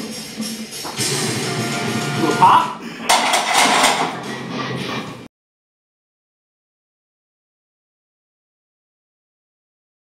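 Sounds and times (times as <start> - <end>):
barbell clanking on metal rack: 3.1 - 4.2.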